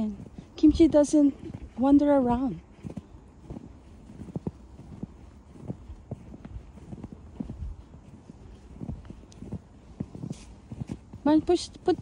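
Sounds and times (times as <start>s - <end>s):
footsteps in fresh snow: 0.0s - 12.0s.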